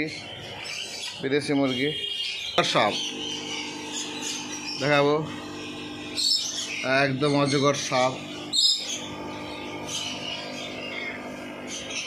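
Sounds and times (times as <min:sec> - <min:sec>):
birds chirping and calling: 0:00.0 - 0:12.0.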